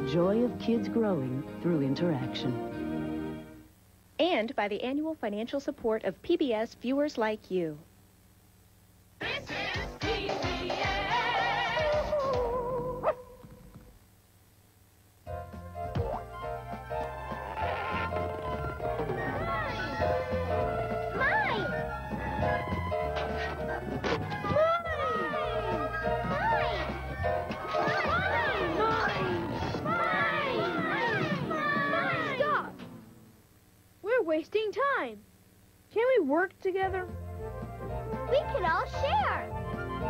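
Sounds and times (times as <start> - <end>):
cartoon dog yip: 13.0 - 13.3
high cartoon voices squealing: 27.6 - 32.8.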